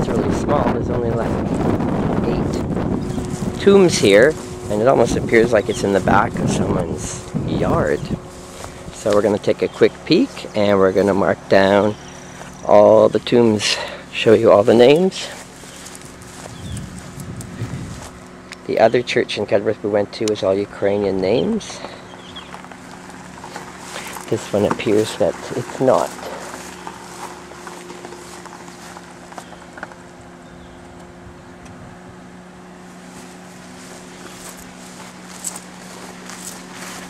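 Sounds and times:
steady low hum: 0.0s - 37.0s
footsteps: 2.5s - 11.6s, 12.2s - 18.4s, 21.7s - 30.0s, 32.9s - 37.0s.

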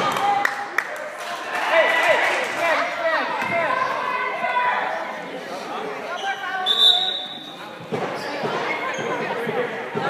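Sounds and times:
voices in gym: 0.0s - 10.0s.

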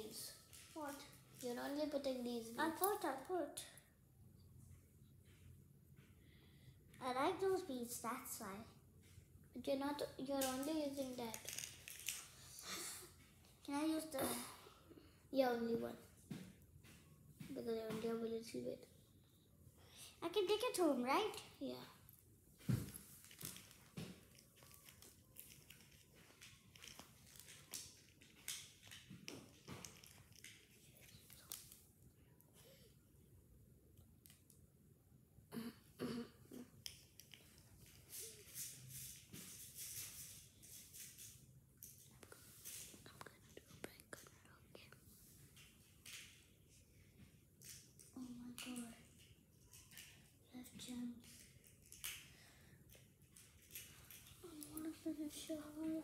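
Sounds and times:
beads clicking and rustling: 10.3s - 12.6s, 22.9s - 31.9s, 51.0s - 52.3s, 52.9s - 55.0s.

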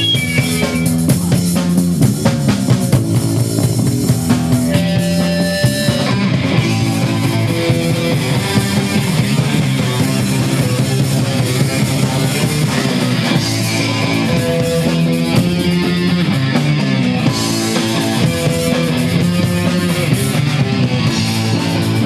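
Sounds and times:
punk band playing live: 0.0s - 22.0s.

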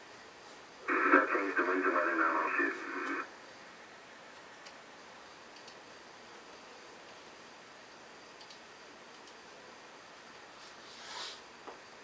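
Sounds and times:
faint steady hiss: 0.5s - 3.7s
tinny radio voice transmission: 0.8s - 3.3s.

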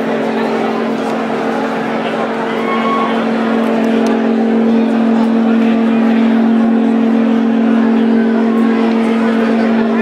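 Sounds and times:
crowd talking: 0.0s - 10.0s
low synth drone: 0.0s - 10.0s.

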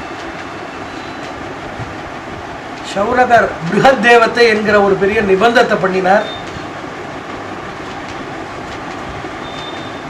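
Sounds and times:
steady hiss and low rumble: 0.0s - 10.0s.

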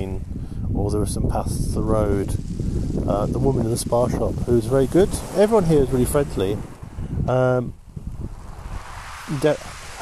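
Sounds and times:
waves washing over shingle: 1.8s - 10.0s.

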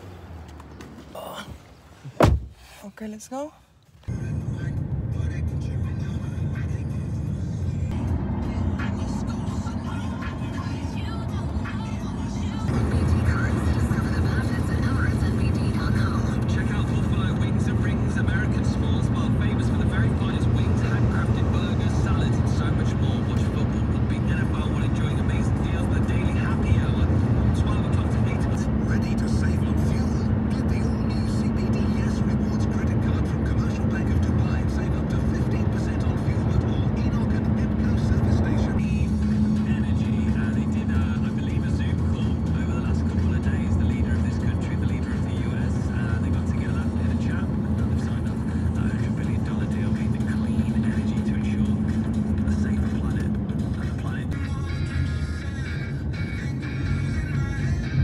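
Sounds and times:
car road and engine noise: 0.0s - 58.0s.

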